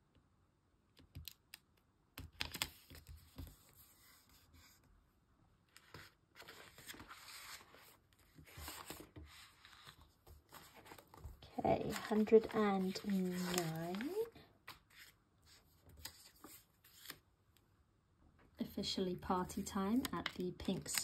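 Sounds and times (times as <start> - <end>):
album pages rustling: 5.7 - 17.2, 19.9 - 21.0.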